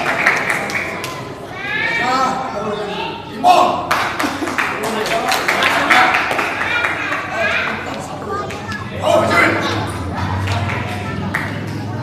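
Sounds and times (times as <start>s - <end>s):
children chattering: 0.0s - 3.7s, 4.4s - 12.0s.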